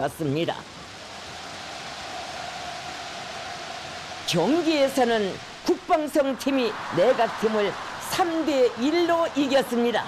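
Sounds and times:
stadium crowd applauding and cheering: 0.8 - 10.0.

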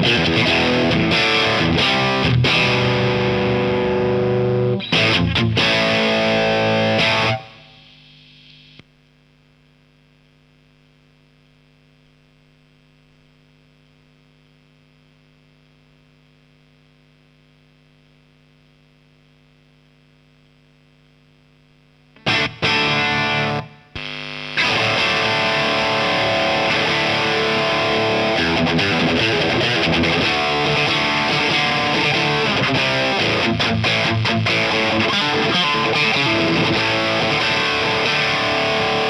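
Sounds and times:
distorted electric guitar notes: 0.0 - 8.8, 22.2 - 39.0
faint amplifier hum: 0.0 - 39.0.

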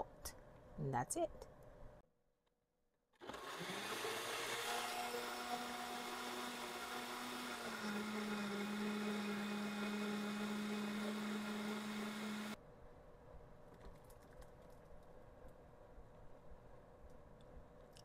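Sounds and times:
blender motor running: 3.2 - 12.6.

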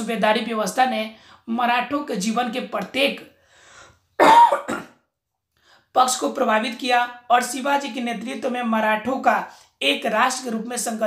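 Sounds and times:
man coughing into hands: 4.2 - 5.0.

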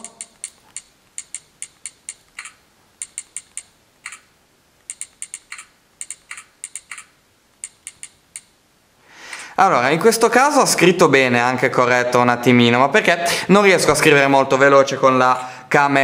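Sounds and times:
smartphone keyboard typing clicks: 0.0 - 8.5.

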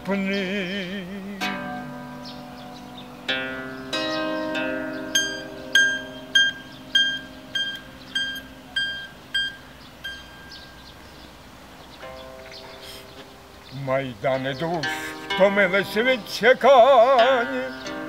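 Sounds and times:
bandura strummed chords: 1.3 - 10.7, 12.0 - 13.5, 14.3 - 18.0
high plucked note: 1.4 - 10.7.

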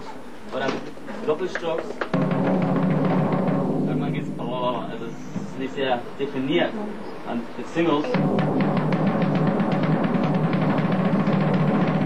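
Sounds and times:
fast roll on floor tom: 2.0 - 6.3, 8.0 - 12.0.

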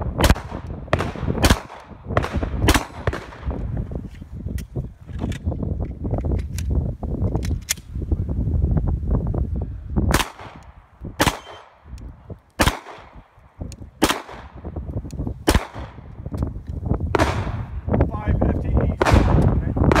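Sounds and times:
pistol shots echoing: 0.2 - 3.6, 10.1 - 11.9, 12.6 - 13.3, 14.0 - 14.7, 15.4 - 16.1, 19.0 - 20.0.

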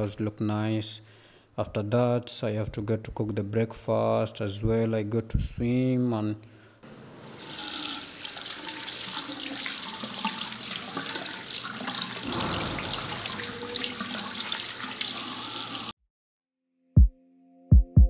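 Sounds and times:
water running from a tap: 7.3 - 15.9.

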